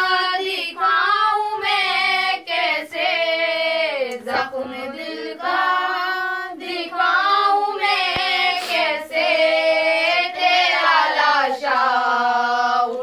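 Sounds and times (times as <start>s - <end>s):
girls singing a lament: 0.0s - 13.0s.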